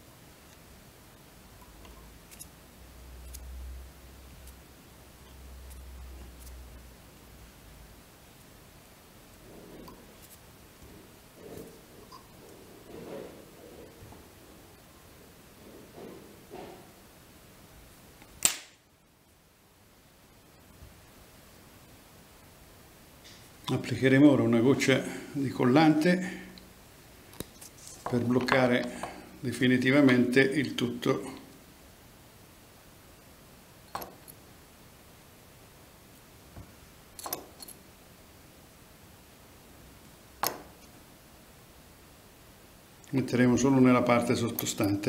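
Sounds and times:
sharp snap: 18.3s - 18.8s.

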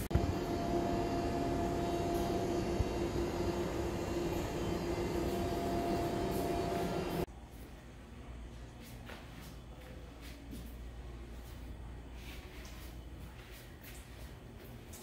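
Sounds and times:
machinery hum: 0.0s - 15.0s.

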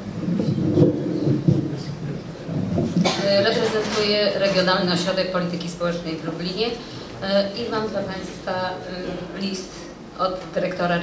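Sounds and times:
microphone handling rumble: 0.0s - 4.3s
microphone thumps: 0.2s - 4.0s.

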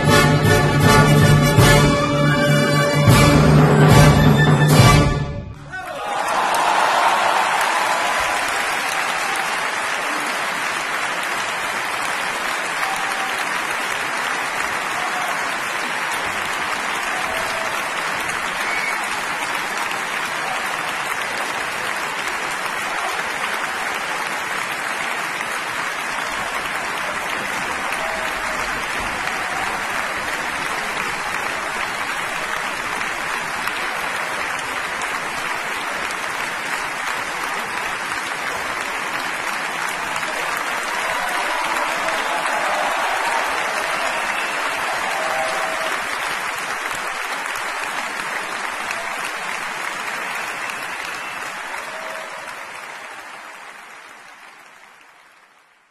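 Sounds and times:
audience applauding: 0.0s - 55.9s.

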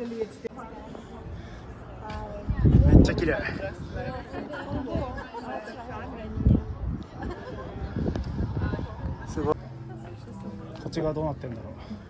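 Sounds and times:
wind rumble on microphone: 2.1s - 9.6s.

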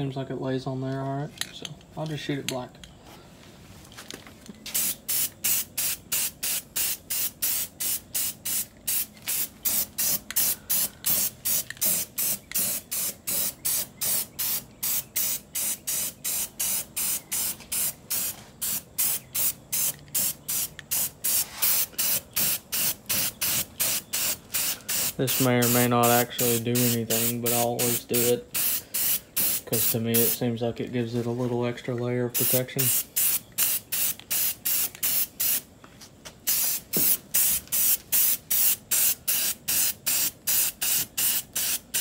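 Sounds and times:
spray paint can hissing in bursts: 4.7s - 30.5s, 32.3s - 35.7s, 36.4s - 42.0s.

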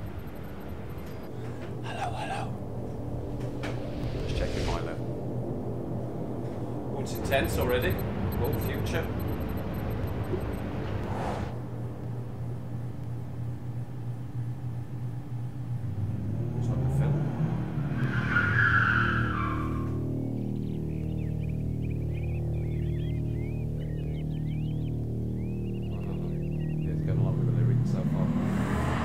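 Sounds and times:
birds chirping: 0.0s - 2.7s, 7.0s - 11.2s, 19.9s - 28.2s
low steady drone: 0.0s - 17.9s, 19.9s - 28.4s.

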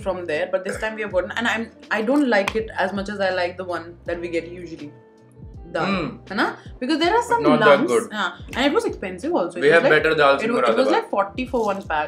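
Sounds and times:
people talking: 0.0s - 4.9s, 5.7s - 12.0s
music with thumping beat: 0.0s - 12.0s.

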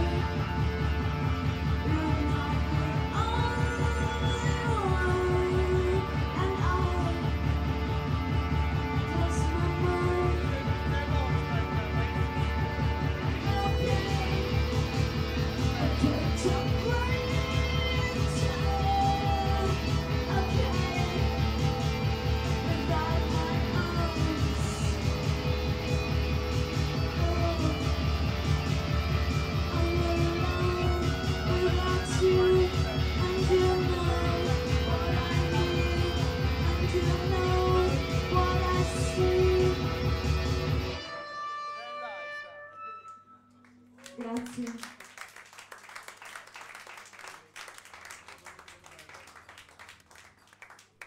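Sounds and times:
electric guitar: 0.0s - 43.3s.

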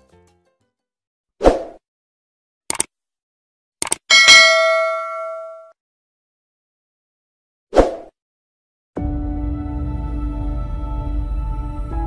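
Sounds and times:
quick clicks: 2.7s - 2.9s, 3.8s - 4.1s
bright bell ding: 4.1s - 5.7s.

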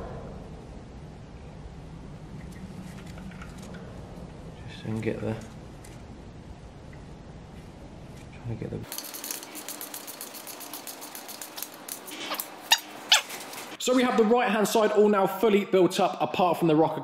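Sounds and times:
ratchet wrench clicking: 8.9s - 12.5s.

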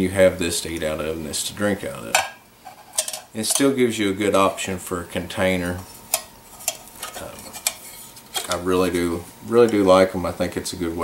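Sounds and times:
metal cups clinking: 2.1s - 3.7s.

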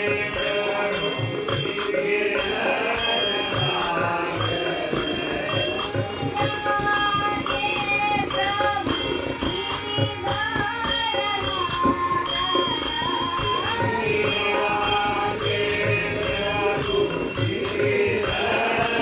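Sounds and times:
group singing devotional song: 0.0s - 19.0s
small hand cymbals: 0.2s - 19.0s.

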